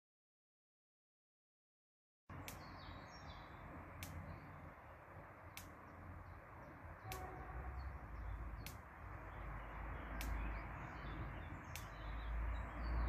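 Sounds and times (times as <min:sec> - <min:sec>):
sharp faint tick: 0:02.3 - 0:02.8, 0:04.0 - 0:04.3, 0:10.2 - 0:10.4, 0:11.7 - 0:12.0
small birds chirping: 0:02.3 - 0:13.0.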